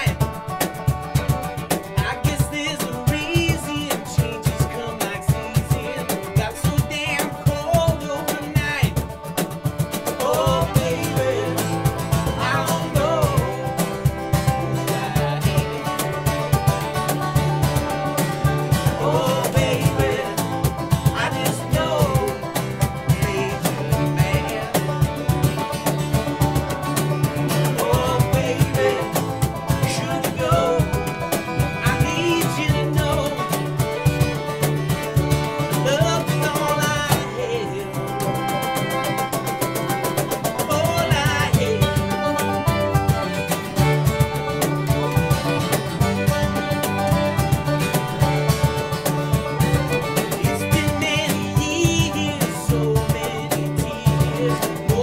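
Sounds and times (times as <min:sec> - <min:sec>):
bowed fiddle: 0:00.0 - 0:55.0
picked banjo: 0:00.0 - 0:55.0
strummed acoustic guitar: 0:00.0 - 0:55.0
upright bass line: 0:00.0 - 0:55.0.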